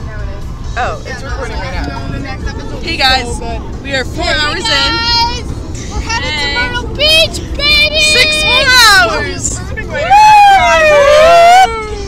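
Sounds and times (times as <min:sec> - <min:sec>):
car cabin road hum: 0:00.0 - 0:12.0
girls squealing and shrieking: 0:06.1 - 0:12.0.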